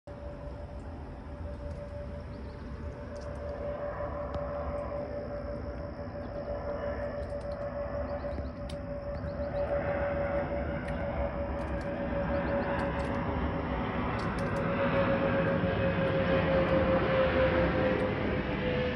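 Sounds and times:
jet airliner flying overhead: 0.0s - 18.9s.

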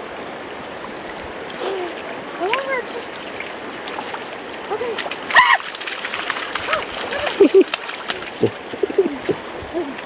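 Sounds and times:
river flowing: 0.0s - 10.0s.

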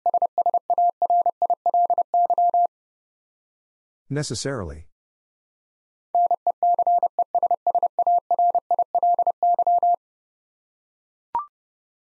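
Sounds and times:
morse code tone: 6.2s - 10.0s.

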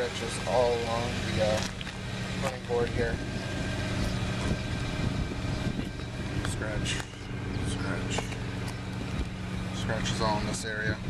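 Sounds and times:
motor humming: 0.5s - 11.0s.

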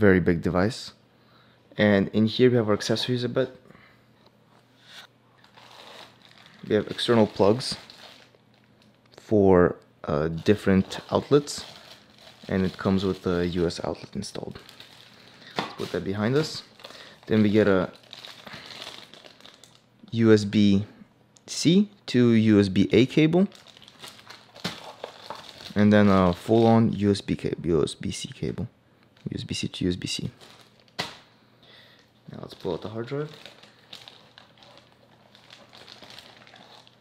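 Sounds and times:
plastic bag crinkling: 5.4s - 9.2s, 10.3s - 20.2s, 23.3s - 26.8s, 29.1s - 31.3s, 31.9s - 37.0s.

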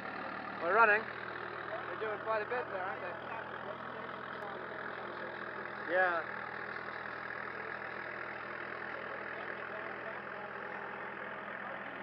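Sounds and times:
farm machine engine running: 0.0s - 12.0s.

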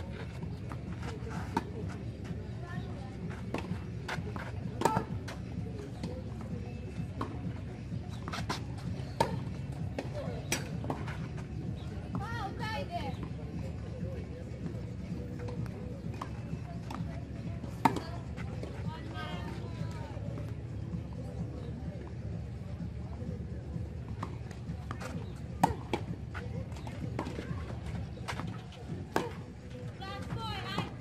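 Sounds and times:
tennis ball bouncing on clay: 3.2s - 6.2s, 15.5s - 20.5s, 24.1s - 31.0s.

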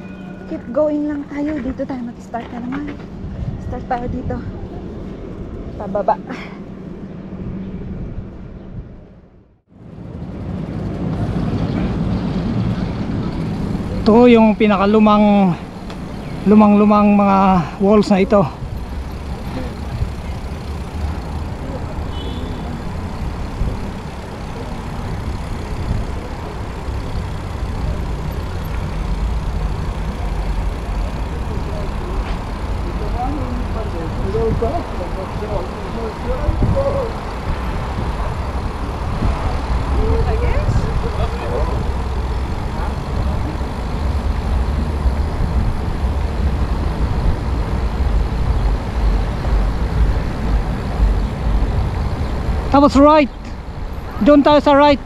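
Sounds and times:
wind on microphone: 2.4s - 5.7s, 36.2s - 43.9s
faint voices: 12.6s - 44.1s.

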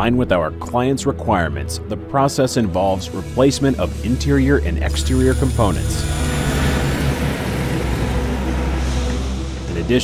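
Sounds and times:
deep engine-like rumble: 3.9s - 10.0s.

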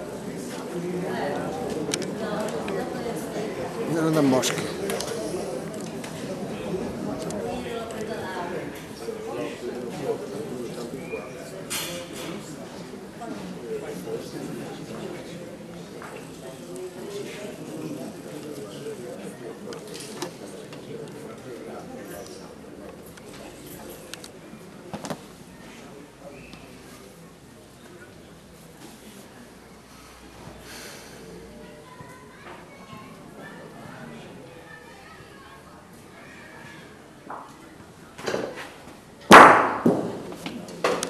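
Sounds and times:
murmur of many voices: 0.0s - 41.0s.

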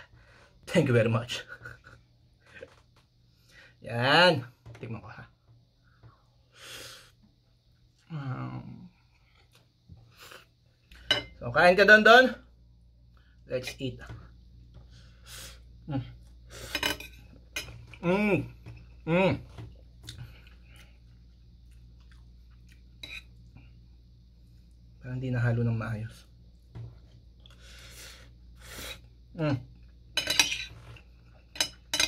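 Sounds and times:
cutlery clinking and scraping on plate: 11.0s - 11.4s, 16.6s - 18.0s, 23.0s - 23.3s, 30.2s - 32.0s
metal spoon clinking on a plate: 30.2s - 30.8s, 31.5s - 32.0s.

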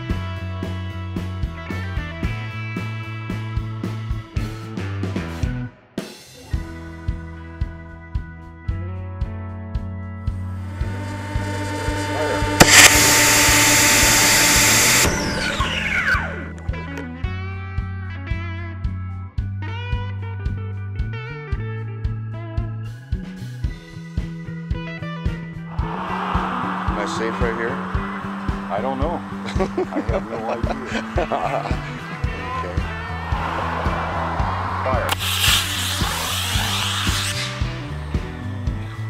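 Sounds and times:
background music with a steady beat: 6.4s - 39.0s
model rocket motor rushing hiss: 10.8s - 15.9s, 35.1s - 38.0s.

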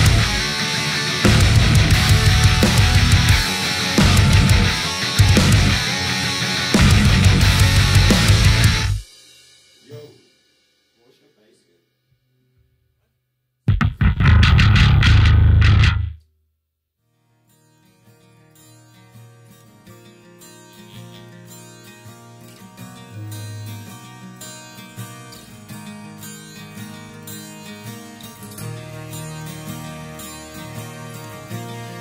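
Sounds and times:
bass guitar: 0.0s - 9.0s, 13.7s - 16.2s
clean electric guitar ringing notes: 0.0s - 9.0s
metal band final chord: 0.0s - 9.0s, 13.7s - 16.1s.

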